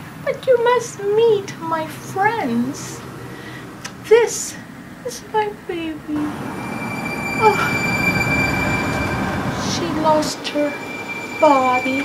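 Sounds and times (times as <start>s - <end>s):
steady rumbling noise: 0.0s - 12.0s
thin high whine: 6.2s - 12.0s.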